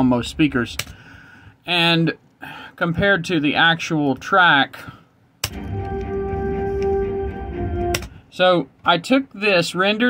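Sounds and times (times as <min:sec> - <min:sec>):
film soundtrack music: 0:05.4 - 0:08.3.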